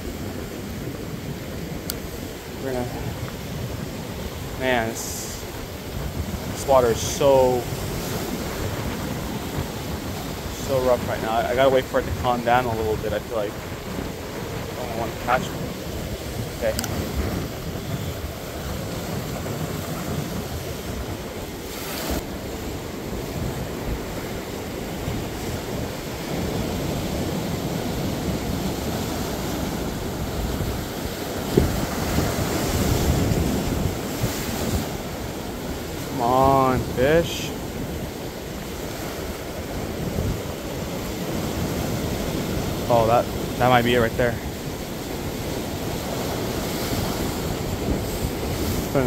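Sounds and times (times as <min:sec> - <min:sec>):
ocean surf washing over rocks: 0:00.0 - 0:49.0.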